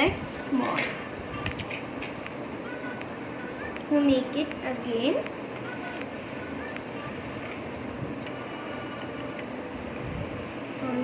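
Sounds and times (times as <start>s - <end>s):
background hiss and hum: 0.0s - 11.0s.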